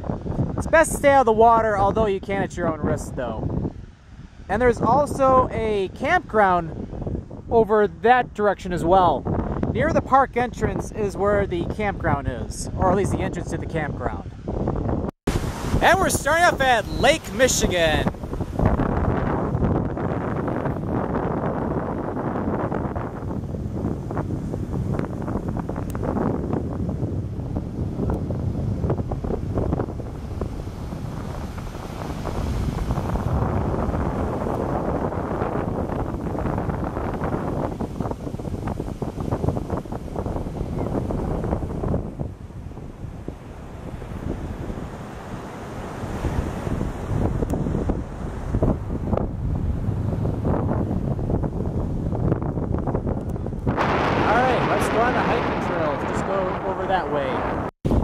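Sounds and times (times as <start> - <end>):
wind buffeting microphone: 0.0 - 58.0
surf breaking on beach: 15.3 - 52.7, 53.3 - 58.0.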